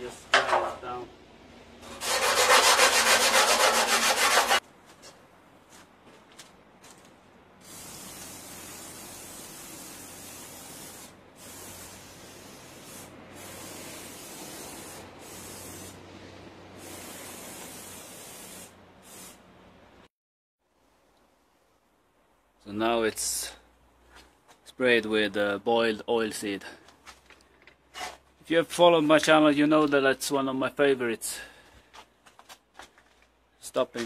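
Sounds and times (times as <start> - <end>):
hand scraping rusty steel: 1.9 - 4.6
spray bottle hissing: 7.6 - 16.0, 16.8 - 19.4.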